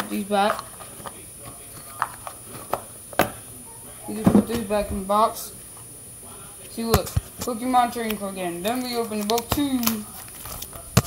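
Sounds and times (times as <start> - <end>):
trading cards clicking and tapping: 6.9 - 11.0.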